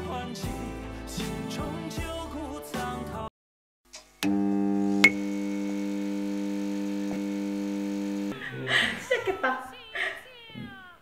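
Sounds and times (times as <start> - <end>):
music: 0.0 - 3.3
voices: 8.4 - 11.0.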